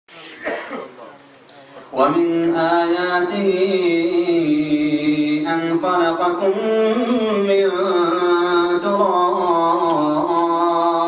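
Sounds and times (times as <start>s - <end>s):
man coughing: 0.3s - 1.0s.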